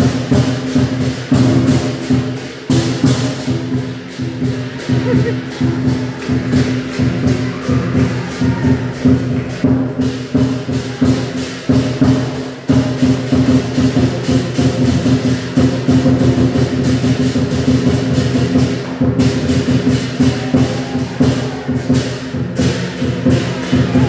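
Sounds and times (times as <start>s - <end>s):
big drum beating: 0.0s - 24.0s
cymbals clashing: 0.0s - 24.0s.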